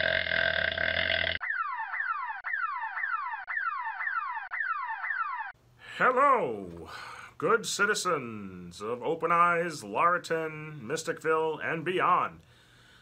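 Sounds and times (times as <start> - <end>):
buzzing fart noise: 0.0 - 1.5
falling whistle: 1.4 - 5.5.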